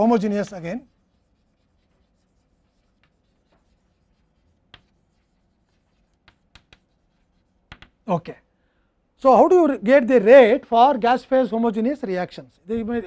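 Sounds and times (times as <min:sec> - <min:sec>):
chalk scratching on blackboard: 0:00.0 - 0:08.0
chalk tapping on board: 0:00.2 - 0:08.0.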